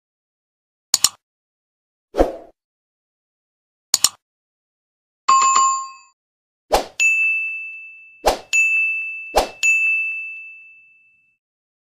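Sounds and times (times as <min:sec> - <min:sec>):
short swish: 0:02.2 - 0:02.6, 0:06.7 - 0:07.0, 0:08.2 - 0:08.5, 0:09.4 - 0:09.6
bright dings: 0:05.3 - 0:06.2, 0:07.0 - 0:11.4.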